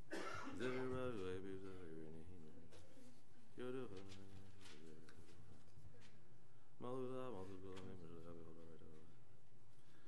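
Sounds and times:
man chanting: 0.6s - 6.0s, 6.8s - 9.3s.

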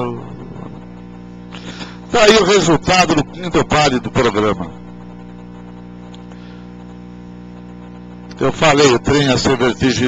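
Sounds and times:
buzzy electrical hum: 0.0s - 10.0s.

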